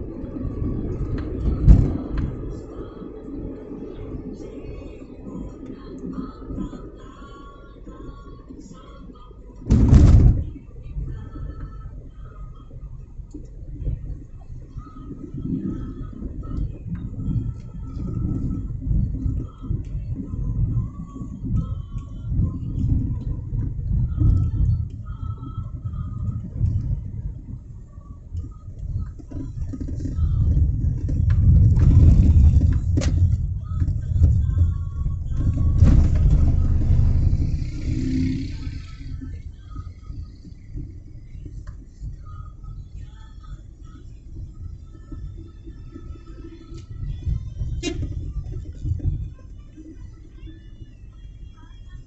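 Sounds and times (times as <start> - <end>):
car interior rumble: 0.0 - 52.0.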